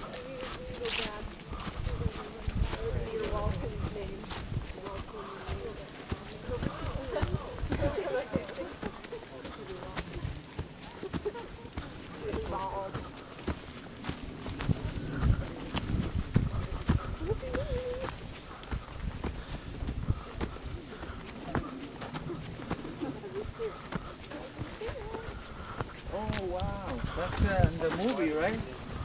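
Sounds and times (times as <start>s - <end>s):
faint indistinct voices: 0.0s - 29.0s
footsteps through dry leaves: 0.0s - 29.0s.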